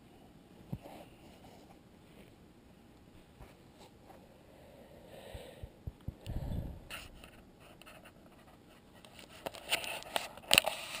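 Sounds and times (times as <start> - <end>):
handling scrapes and clicks: 9.0 - 11.0.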